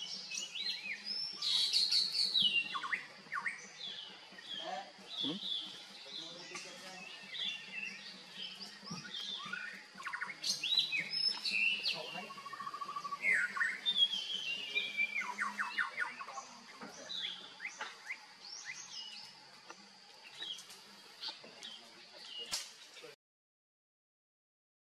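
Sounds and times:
songbirds chirping and trilling: 0:00.0 - 0:23.2.

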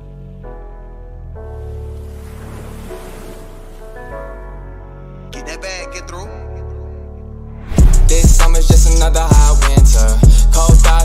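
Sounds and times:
ocean surf washing in: 0:02.0 - 0:04.4
low bass: 0:07.5 - 0:11.0.

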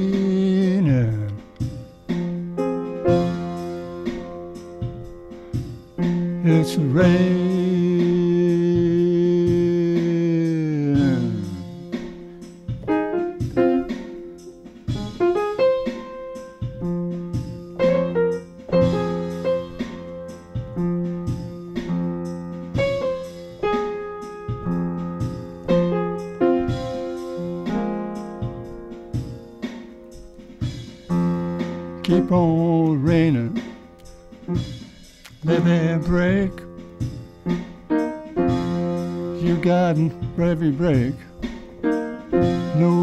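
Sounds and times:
upright piano playing blues: 0:00.0 - 0:43.0.

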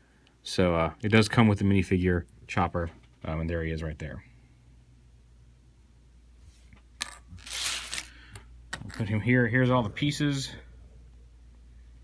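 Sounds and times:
plastic pieces clicking and clattering: 0:07.0 - 0:08.1.

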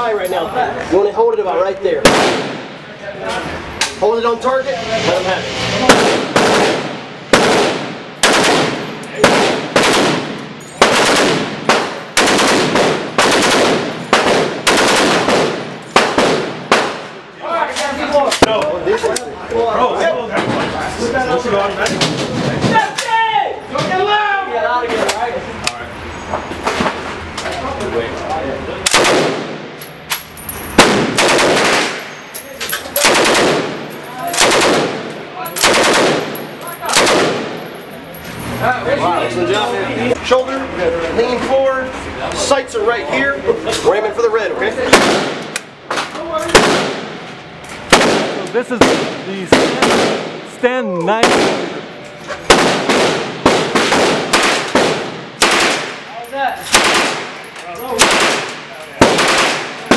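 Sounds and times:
machine gun bursts: 0:05.9 - 0:17.0, 0:30.8 - 0:32.2, 0:32.9 - 0:35.0, 0:35.6 - 0:37.6, 0:56.7 - 0:57.4, 0:58.0 - 0:59.9.

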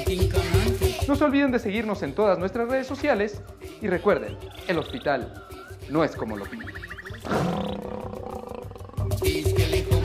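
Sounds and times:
background music with low beat: 0:00.0 - 0:10.0
big cat roar: 0:07.2 - 0:09.2.

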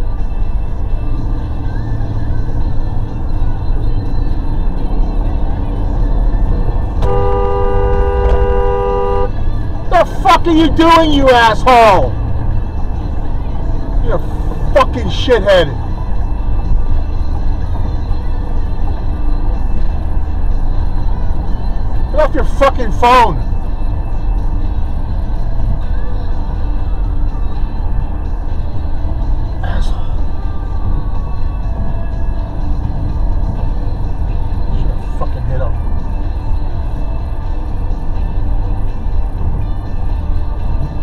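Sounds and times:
vehicle engine and tyres rumbling: 0:00.0 - 0:41.0.

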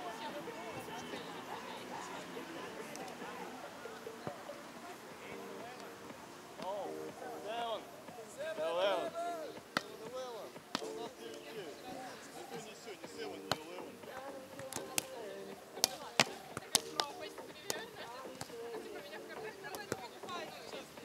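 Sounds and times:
chatter of voices: 0:00.0 - 0:21.0
volleyball struck by hand: 0:09.6 - 0:11.0, 0:13.4 - 0:15.2, 0:15.8 - 0:18.6, 0:19.7 - 0:20.4.

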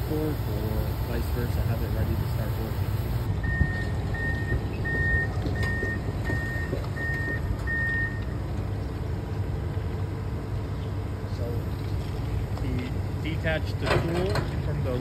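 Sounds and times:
excavator diesel engine running: 0:00.0 - 0:03.3
backup alarm beeping: 0:00.0 - 0:08.2.

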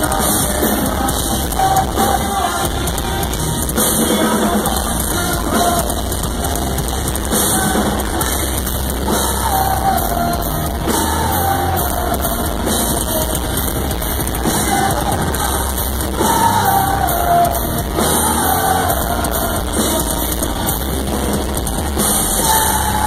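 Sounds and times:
metalcore band playing live: 0:00.0 - 0:23.0
person singing: 0:00.0 - 0:23.0.

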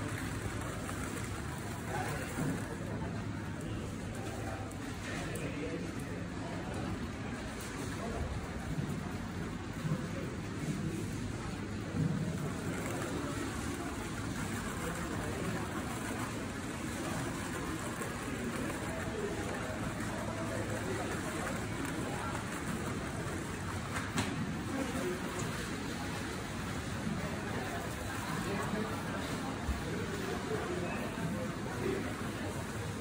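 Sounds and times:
indistinct shoppers' voices: 0:00.0 - 0:33.0.

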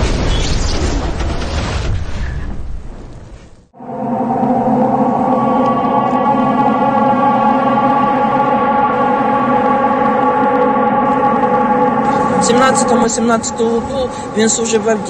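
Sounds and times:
siren-like drone: 0:03.8 - 0:15.0.

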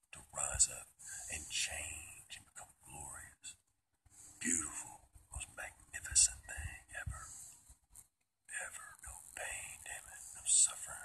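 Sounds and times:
man whispering: 0:00.1 - 0:03.6, 0:04.2 - 0:07.6, 0:08.5 - 0:11.0.

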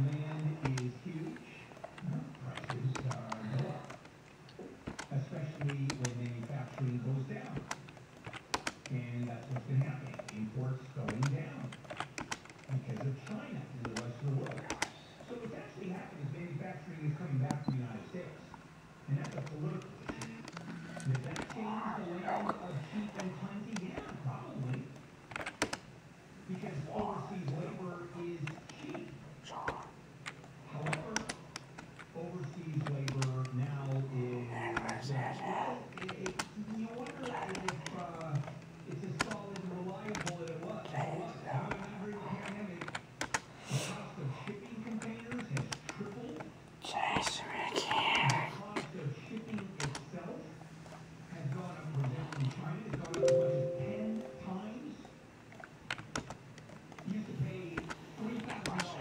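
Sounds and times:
muffled radio talk: 0:00.0 - 0:04.0, 0:12.7 - 0:24.9, 0:26.5 - 0:30.0, 0:32.2 - 0:42.9, 0:46.8 - 0:50.4, 0:51.4 - 0:55.0, 0:58.2 - 0:59.0
low-pitched voice talking: 0:34.2 - 0:35.9, 0:46.8 - 0:48.6, 0:53.2 - 0:54.6.

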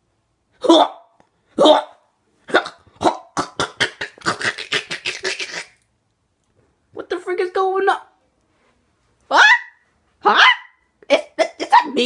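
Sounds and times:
person yelping: 0:09.3 - 0:12.0.

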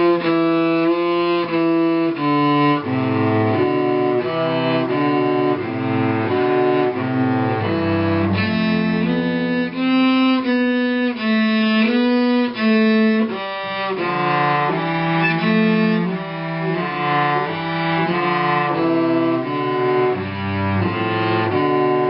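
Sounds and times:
bowed cello tune: 0:00.0 - 0:22.0.

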